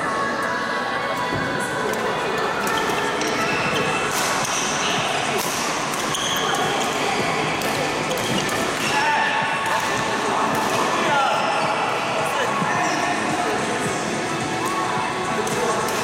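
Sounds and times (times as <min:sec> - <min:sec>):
shoes squeaking on court floor: 0:02.6 - 0:05.0, 0:06.0 - 0:08.9
rackets striking shuttlecock: 0:04.1 - 0:04.8, 0:05.4 - 0:07.0, 0:07.6 - 0:09.0.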